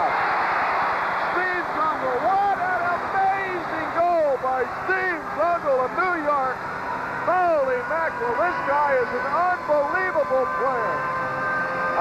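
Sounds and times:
crowd roar: 0:00.0 - 0:09.8
man commentating: 0:01.3 - 0:06.6, 0:07.2 - 0:11.0.

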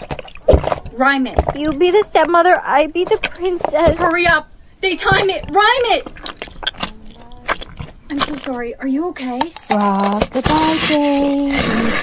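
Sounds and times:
bites and wet chewing: 0:00.0 - 0:12.0
faint low hum: 0:00.0 - 0:12.0.

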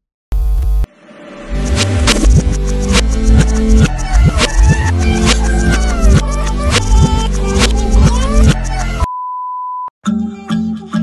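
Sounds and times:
music with heavy bass beat: 0:01.8 - 0:09.1.

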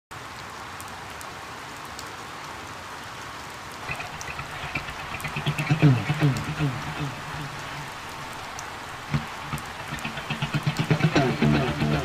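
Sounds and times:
steady rain hiss: 0:00.1 - 0:12.0
single raindrops ticking: 0:03.8 - 0:12.0.

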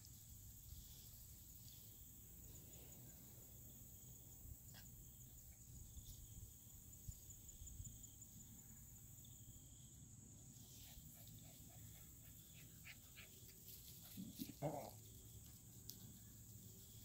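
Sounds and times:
faint insect trill: 0:00.0 - 0:17.0.

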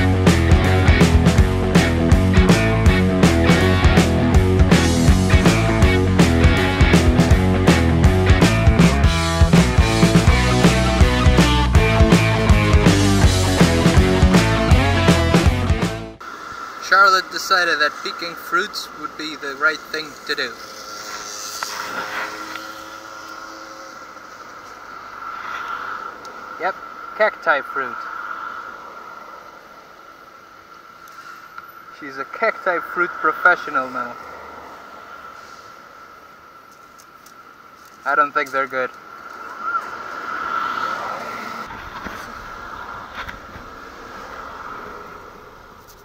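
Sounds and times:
road traffic passing: 0:00.0 - 0:46.0
steady high tone: 0:16.2 - 0:28.1.

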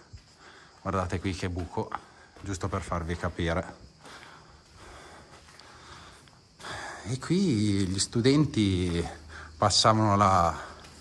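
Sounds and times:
man breathing: 0:00.0 - 0:00.8, 0:03.8 - 0:07.2, 0:09.1 - 0:09.6, 0:10.6 - 0:11.0.

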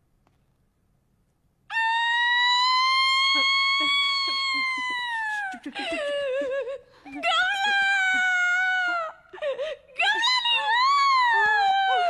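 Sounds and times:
woman crying and sobbing: 0:01.7 - 0:12.0.

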